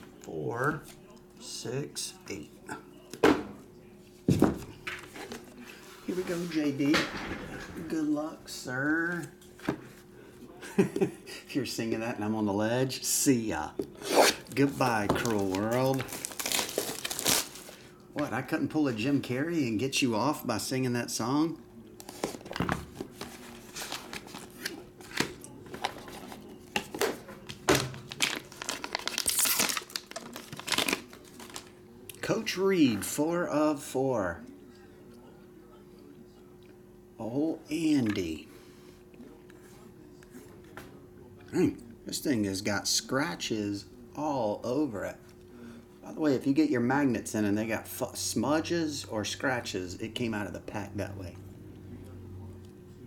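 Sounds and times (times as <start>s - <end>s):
foil pack crinkling and tearing: 15.2s - 17.8s, 27.8s - 31.7s.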